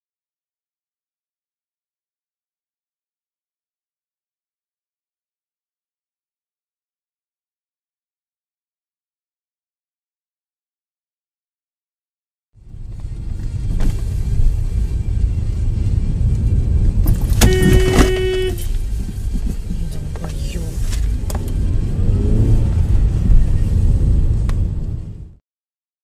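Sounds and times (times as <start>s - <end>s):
car road and engine rumble: 12.6s - 25.4s.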